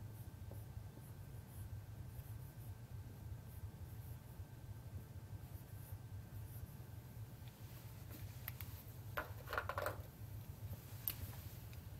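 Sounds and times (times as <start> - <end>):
low steady hum: 0.0 - 11.9.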